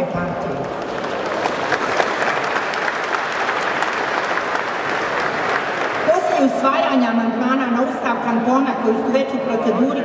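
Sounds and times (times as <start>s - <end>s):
audience applauding: 0.7s - 6.7s.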